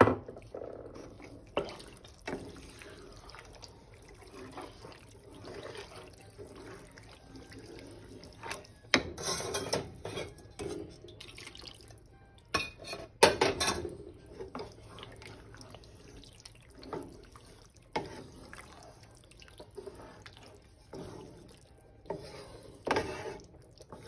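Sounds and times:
wet squelching of stirred pasta: 0:00.3 - 0:12.5, 0:14.0 - 0:24.0.

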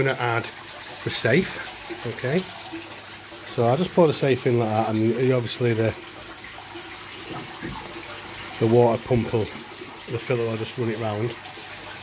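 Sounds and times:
water pouring into aquarium: 0:00.0 - 0:12.0.

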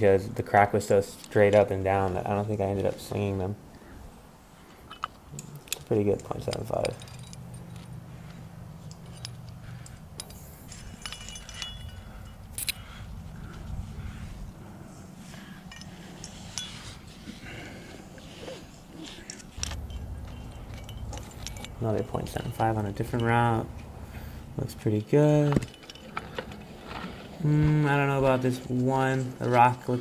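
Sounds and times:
low steady rumble: 0:01.7 - 0:29.7
climbing hardware jangling: 0:04.8 - 0:14.2, 0:15.4 - 0:17.7, 0:19.0 - 0:30.0.

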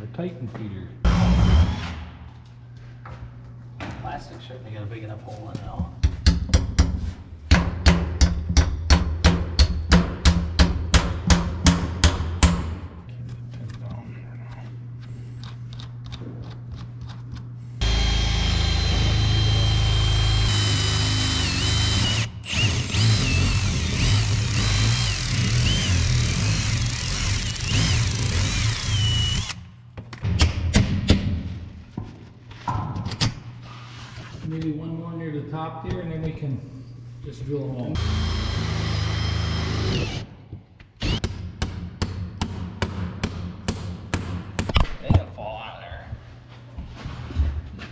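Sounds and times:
cordless drill motor whining: 0:17.8 - 0:29.6, 0:38.0 - 0:40.3, 0:41.0 - 0:41.2.

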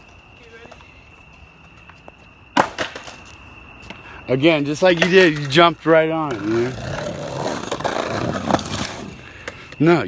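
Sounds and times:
skateboard cracking on pavement: 0:00.0 - 0:03.5, 0:04.7 - 0:09.9
skateboard clattering: 0:02.5 - 0:03.3, 0:04.8 - 0:09.8.

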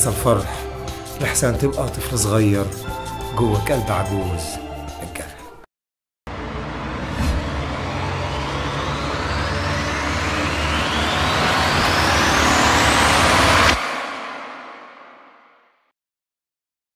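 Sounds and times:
low rumble: 0:06.3 - 0:15.2
whoosh rising in pitch: 0:06.3 - 0:15.5.

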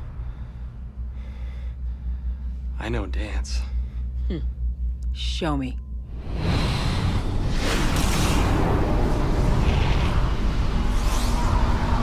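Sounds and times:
deep pulsing hum: 0:00.0 - 0:12.0.

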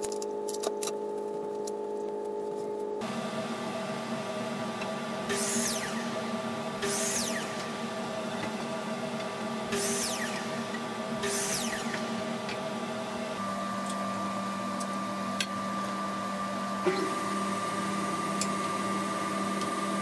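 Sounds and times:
woodworking machinery running: 0:03.0 - 0:20.0.

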